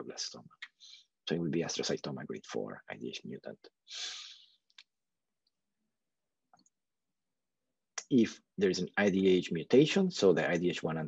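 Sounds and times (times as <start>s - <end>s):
person breathing: 3.9s - 4.6s.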